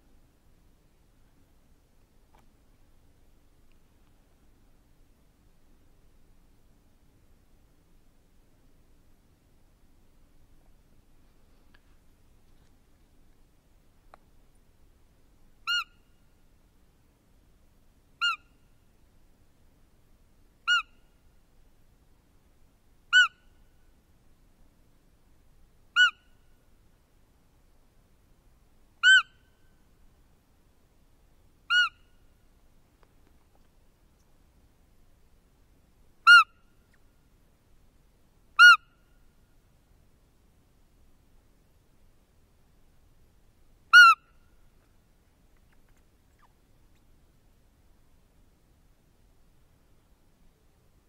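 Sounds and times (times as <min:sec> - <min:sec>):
squeaky deer calls: 0:15.6 - 0:16.2, 0:18.2 - 0:18.6, 0:20.6 - 0:21.1, 0:23.1 - 0:23.6, 0:25.9 - 0:26.5, 0:29.0 - 0:29.7, 0:31.7 - 0:32.2, 0:36.2 - 0:36.6, 0:38.6 - 0:39.1, 0:43.9 - 0:44.4.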